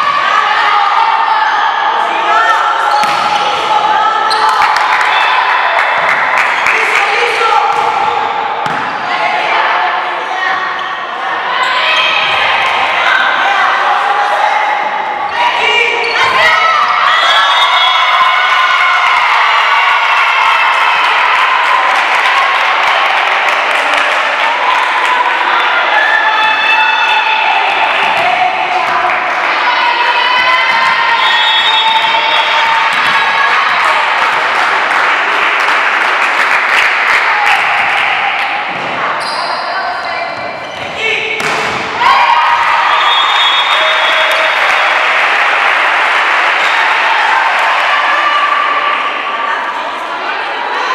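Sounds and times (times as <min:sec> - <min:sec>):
many voices shouting: 0:00.0 - 0:35.8, 0:36.9 - 0:50.9
volleyball strikes: 0:02.9 - 0:03.7, 0:07.7 - 0:09.1, 0:30.6 - 0:34.5, 0:40.3 - 0:42.0
ball bounces: 0:03.0 - 0:03.4, 0:08.6 - 0:09.0, 0:32.9 - 0:33.2, 0:40.4 - 0:42.0.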